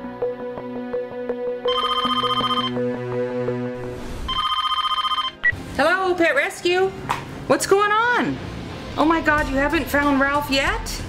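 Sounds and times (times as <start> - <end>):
background music: 0.0 - 5.6, 8.1 - 11.0
telephone ringing: 1.7 - 2.8, 4.3 - 5.5.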